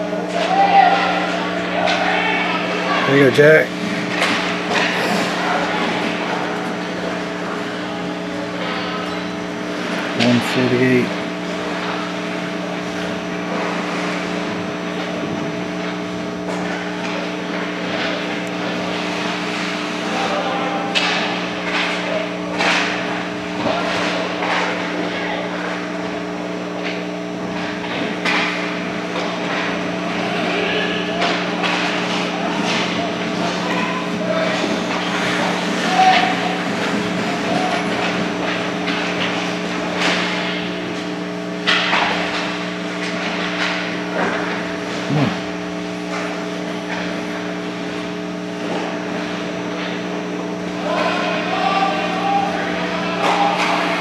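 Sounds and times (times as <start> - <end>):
steady rink hum: 0.0 - 54.0
hockey sticks and puck clacking: 20.8 - 25.0, 31.2 - 44.7, 52.0 - 54.0
players shouting: 50.8 - 54.0.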